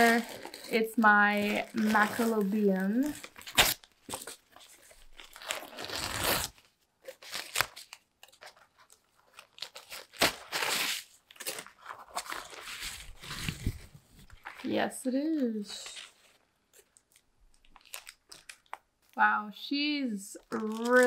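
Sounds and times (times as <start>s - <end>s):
plastic wrapping rustling: 0.0s - 15.0s, 15.6s - 19.2s, 20.4s - 21.0s.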